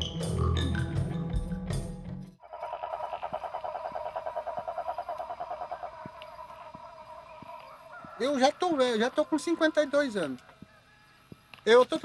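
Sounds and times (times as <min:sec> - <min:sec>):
music track: 0:00.0 - 0:02.4
frogs calling: 0:02.4 - 0:11.4.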